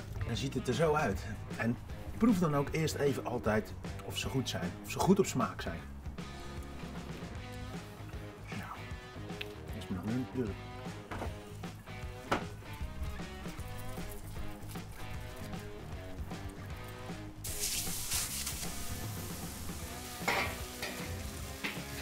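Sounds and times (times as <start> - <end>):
background music: 0.0 - 22.0
patties sizzling on a griddle: 17.4 - 22.0.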